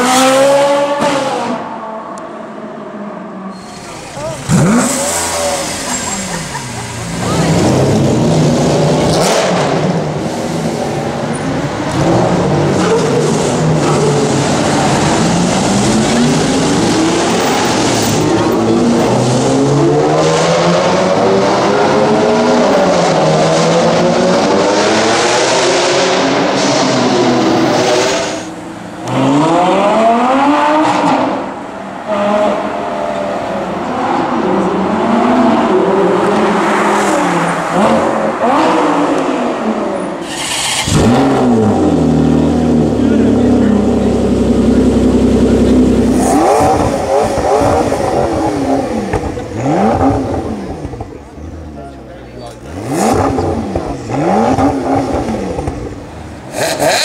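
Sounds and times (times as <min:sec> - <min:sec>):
car engines revving hard: 0:00.0 - 0:57.0.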